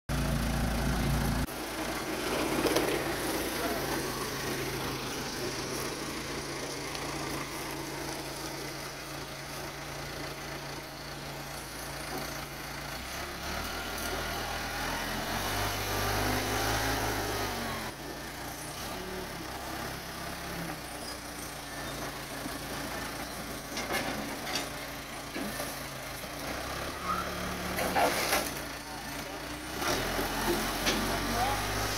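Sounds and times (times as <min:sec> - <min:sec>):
diesel engine running under load: 0:00.1 - 0:31.9
wooden shed pushed over gravel: 0:00.2 - 0:14.2, 0:27.6 - 0:31.9.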